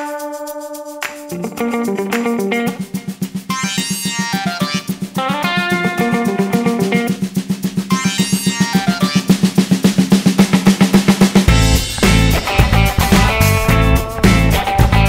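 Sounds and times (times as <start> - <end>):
fast drum roll: 2.8 - 15.0
synth arpeggios sweeping: 3.4 - 5.9, 7.9 - 9.4.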